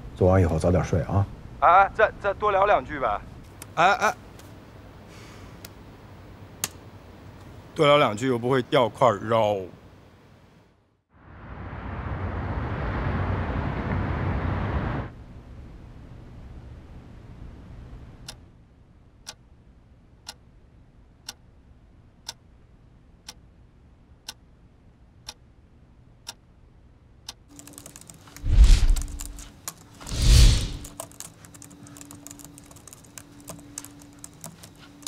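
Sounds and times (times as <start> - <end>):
steady low hum: 9.0 - 35.0
clock ticking: 19.2 - 19.4, 20.2 - 20.4, 21.2 - 21.4, 22.2 - 22.4, 23.2 - 23.4, 24.2 - 24.5, 25.2 - 25.4, 26.2 - 26.4
rapid typing on keyboard: 27.5 - 35.0
loud whooshes: 28.4 - 29.4, 30.0 - 30.9.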